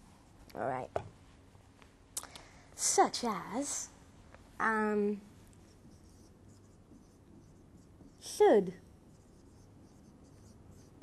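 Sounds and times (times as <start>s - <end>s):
marker strokes on whiteboard: 5.6s - 11.0s.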